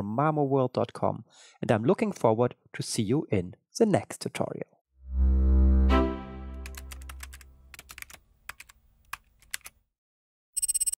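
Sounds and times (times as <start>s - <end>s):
held musical chord: 5.2s - 6.8s
keyboard key clicks: 6.7s - 9.7s.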